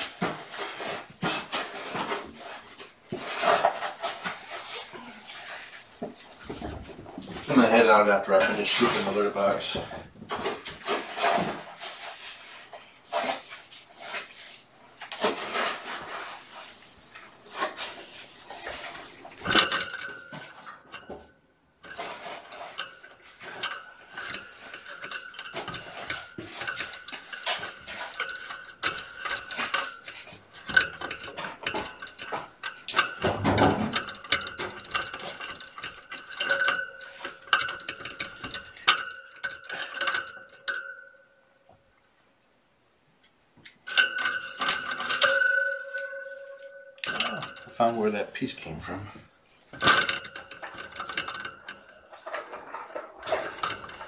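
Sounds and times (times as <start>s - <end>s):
hard objects clattering and clicking: 0.0s - 14.3s, 15.0s - 41.4s, 43.6s - 48.0s, 48.9s - 54.0s.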